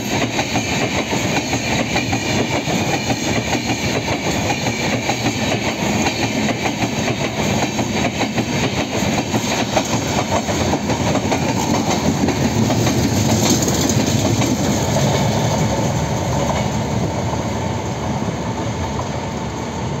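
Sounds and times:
wheels clacking over rail joints: 0:00.0 - 0:17.5
train coaches rolling past: 0:00.0 - 0:20.0.

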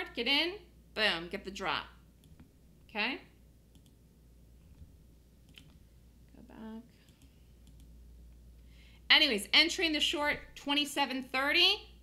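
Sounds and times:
low steady hum: 0:00.0 - 0:12.0
faint computer clicks: 0:07.0 - 0:08.0.

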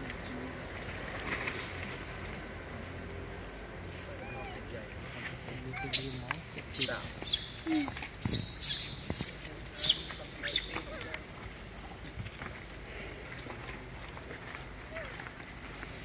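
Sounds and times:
sharp high-pitched animal chirps: 0:06.8 - 0:10.7.

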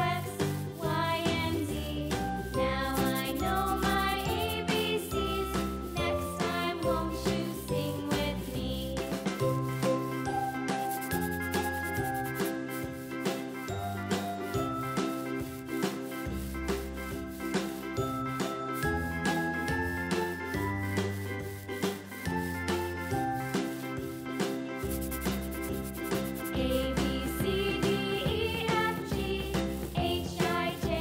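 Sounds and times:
upbeat children's music: 0:00.0 - 0:31.0.

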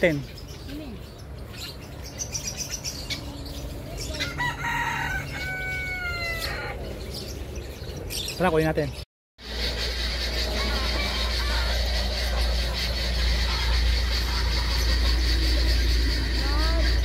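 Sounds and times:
rooster crowing: 0:04.2 - 0:06.9, 0:10.3 - 0:12.9.

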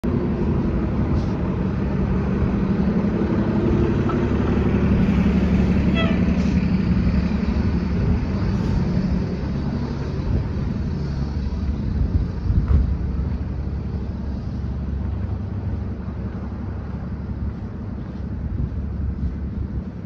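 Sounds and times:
bus engine low drone: 0:00.0 - 0:20.0
brief high squeal: 0:05.9 - 0:06.6.

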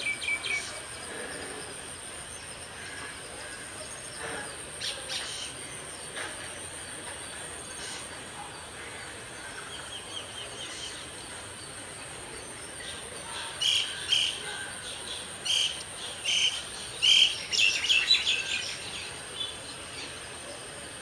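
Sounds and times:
bird singing: 0:00.0 - 0:20.6.

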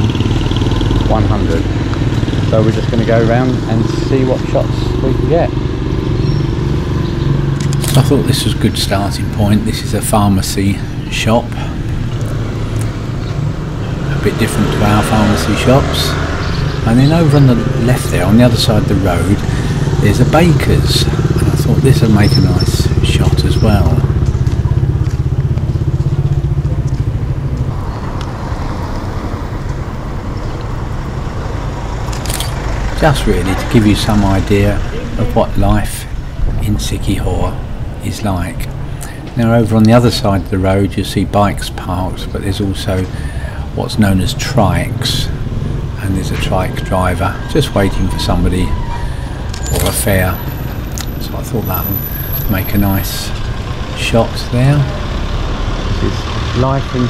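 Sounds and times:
motorcycle engine running: 0:00.0 - 0:09.8, 0:11.7 - 0:35.5
street noise: 0:00.0 - 0:57.0
sharp clicks: 0:07.5 - 0:08.0, 0:32.0 - 0:32.7, 0:50.9 - 0:51.2.

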